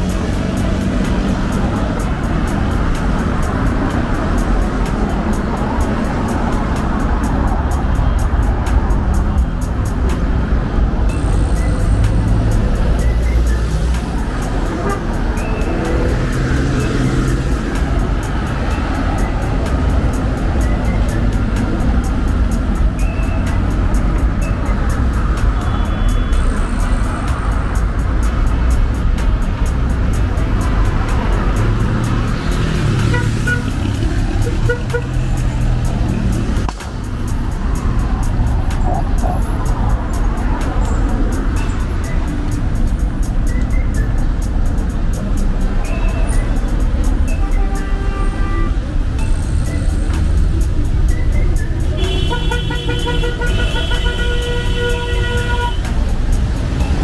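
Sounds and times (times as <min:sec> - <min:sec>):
cars passing close by: 0:00.0 - 0:57.0
music playing: 0:00.0 - 0:57.0.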